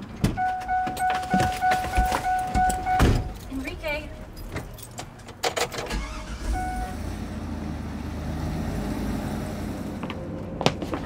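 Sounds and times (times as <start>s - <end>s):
bus engine running: 0.0s - 11.0s
short steady beep: 0.4s - 3.4s
keys jingling: 0.4s - 6.0s.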